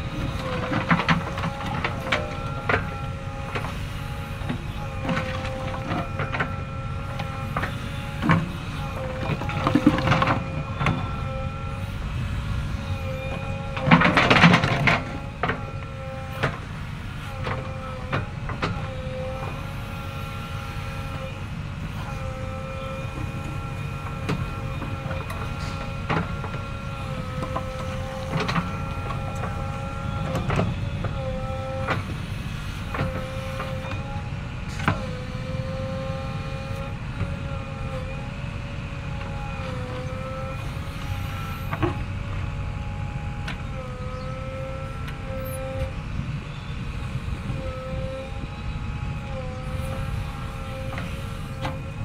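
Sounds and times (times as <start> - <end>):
diesel engine under load: 0.0 - 52.0
hydraulic whine: 0.0 - 52.0.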